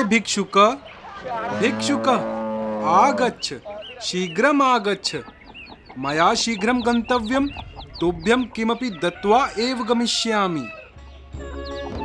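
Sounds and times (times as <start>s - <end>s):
hens clucking: 0.0s - 10.9s
long low drawn-out call: 0.8s - 4.1s.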